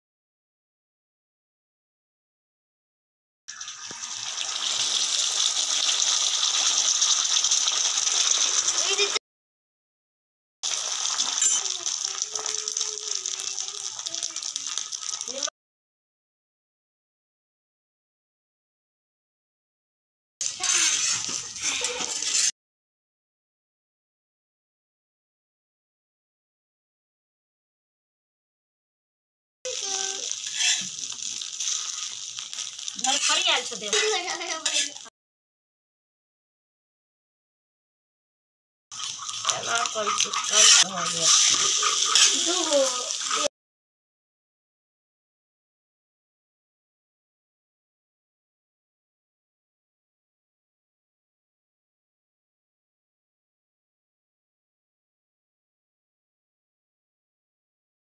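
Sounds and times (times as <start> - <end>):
omelette sizzling on a griddle: 3.5 - 9.2, 10.6 - 15.5, 20.4 - 22.5, 29.7 - 35.1, 38.9 - 43.5
metal spatula scraping a pan: 20.4 - 22.5, 29.8 - 35.1, 39.0 - 43.5.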